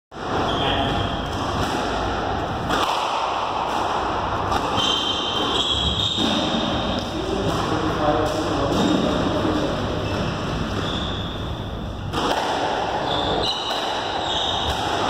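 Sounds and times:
rackets striking ball: 0:00.2 - 0:11.2, 0:11.8 - 0:15.0
squash ball thuds: 0:01.3 - 0:09.2, 0:13.6 - 0:15.0.

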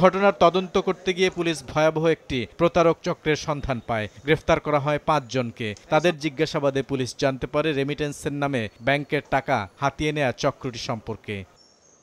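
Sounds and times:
man speaking: 0:00.0 - 0:11.6.

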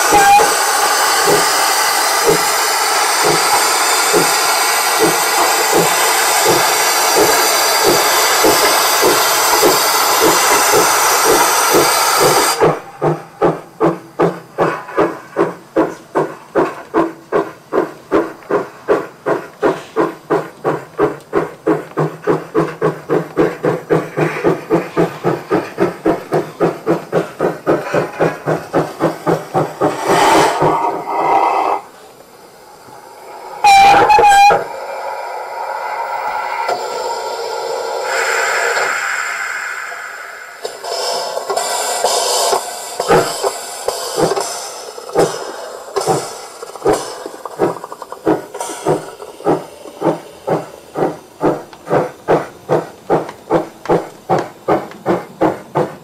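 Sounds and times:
locomotive whistle blast: 0:00.0 - 0:01.4, 0:33.5 - 0:34.9
steam hissing: 0:00.0 - 0:56.0
steam locomotive exhaust chuffs: 0:00.0 - 0:56.0.

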